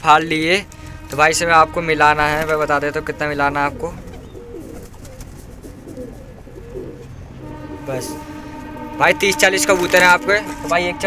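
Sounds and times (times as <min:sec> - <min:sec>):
pigeons cooing: 0:03.0 - 0:08.7.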